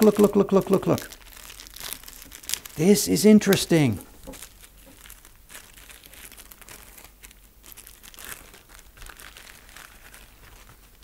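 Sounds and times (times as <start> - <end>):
plastic sleeve and paper crinkling: 0.0 - 11.0.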